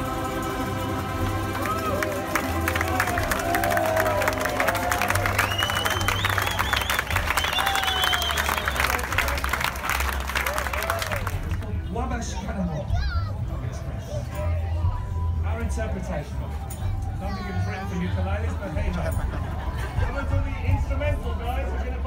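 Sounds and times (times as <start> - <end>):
audience applauding: 0.0 - 11.8
cheers and whoops: 1.5 - 9.2, 10.3 - 11.4.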